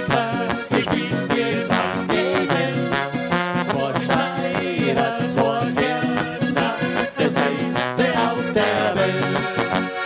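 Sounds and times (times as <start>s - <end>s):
man singing into microphone: 0.0s - 9.6s
button accordion: 0.0s - 10.0s
folk band playing: 0.0s - 10.0s.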